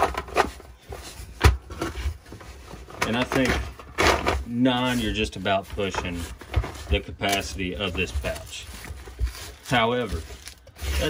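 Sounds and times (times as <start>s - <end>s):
plastic magazines clacking together: 5.4s - 11.0s.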